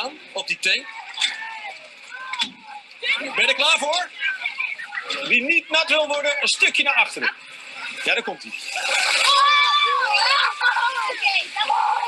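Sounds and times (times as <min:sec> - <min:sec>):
children shouting and shrieking: 0:00.8 - 0:06.8, 0:08.6 - 0:12.0
water gushing from hose: 0:05.3 - 0:12.0.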